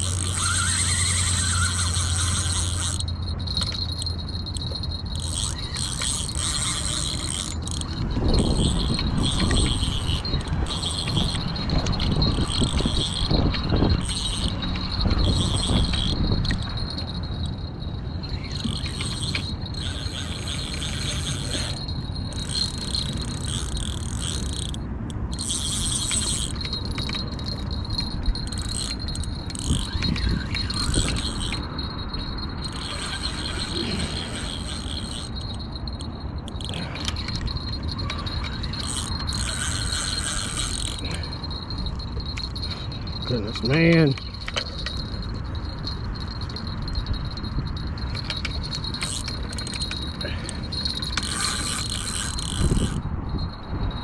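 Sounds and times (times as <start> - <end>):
fishing reel gears whirring: 0.0 - 54.0.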